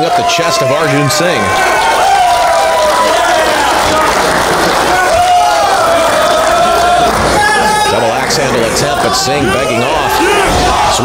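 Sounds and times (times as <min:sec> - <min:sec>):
crowd shouting long calls: 0:00.0 - 0:11.0.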